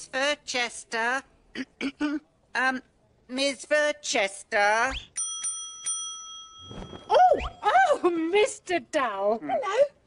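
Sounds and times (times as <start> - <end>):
service bell ringing: 5.2 - 7.2.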